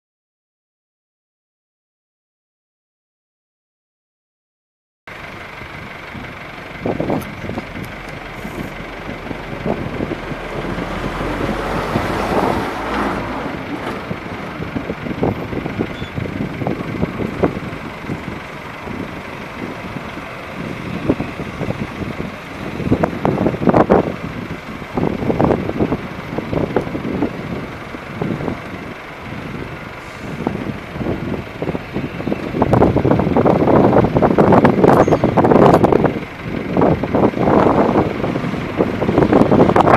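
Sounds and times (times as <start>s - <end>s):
diesel engines rumbling: 5.1s - 39.9s.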